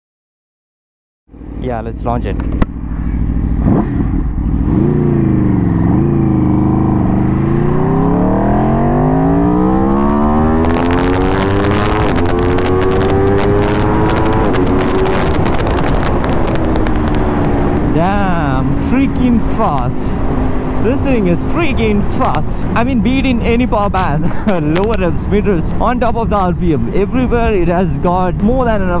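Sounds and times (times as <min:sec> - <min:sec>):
motorcycle engine accelerating: 0:01.3 - 0:28.3
wind noise on microphone: 0:03.6 - 0:18.8.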